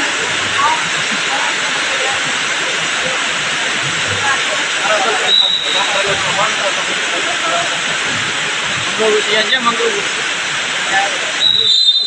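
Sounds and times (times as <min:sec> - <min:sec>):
faint scattered voices: 0:00.0 - 0:10.0
loud steady hiss: 0:00.0 - 0:12.0.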